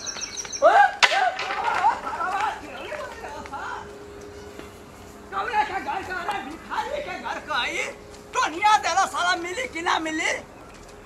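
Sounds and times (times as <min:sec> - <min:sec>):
people yelling and crying out: 0:00.6 - 0:04.0
sharp crack: 0:01.0 - 0:02.1.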